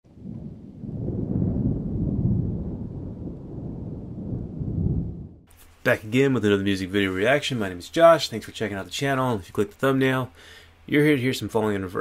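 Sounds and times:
crackling low rumble: 0.0s - 9.9s.

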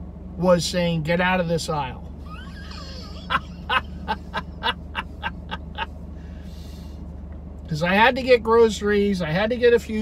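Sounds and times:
man chuckling under his breath: 2.3s - 6.0s.

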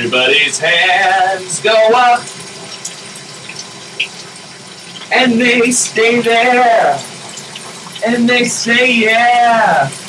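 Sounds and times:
shower water spraying: 0.0s - 10.0s.

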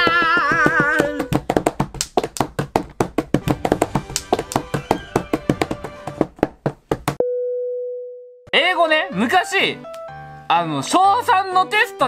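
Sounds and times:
hands drumming on wooden table: 0.0s - 7.2s.

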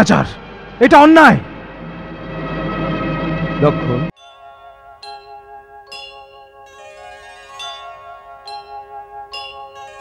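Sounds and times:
sustained chord: 0.0s - 10.0s
bright chime-like notes: 4.1s - 10.0s.

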